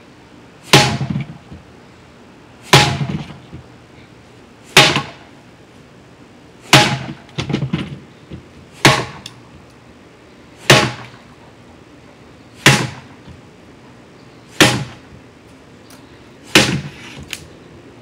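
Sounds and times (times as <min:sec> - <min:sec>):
rattle of small knocks: 0:07.1 - 0:08.4.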